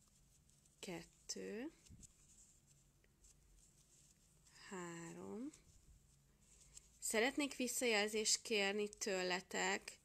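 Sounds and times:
soft rustles of yarn: 0.0s - 10.0s.

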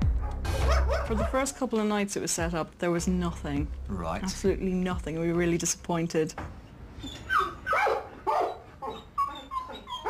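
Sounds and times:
dog barking and yelping: 0.2s - 1.4s, 7.0s - 10.0s.

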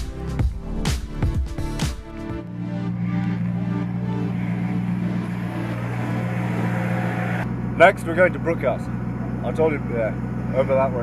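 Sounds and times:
car engine running steadily: 0.0s - 11.0s.

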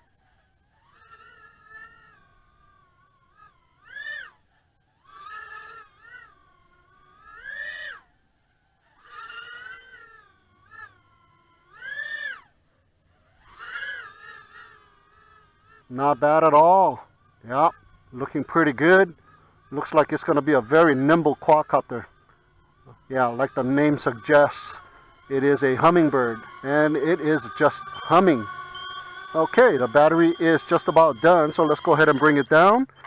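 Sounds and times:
quadcopter motors whining: 0.0s - 33.0s.

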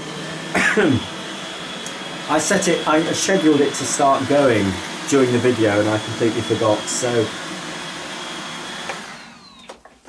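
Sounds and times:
robot vacuum motor and fan: 0.0s - 9.8s.

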